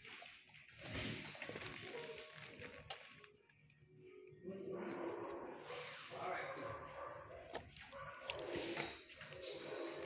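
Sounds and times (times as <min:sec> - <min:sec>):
dogs barking in kennel: 0:04.7 - 0:10.0.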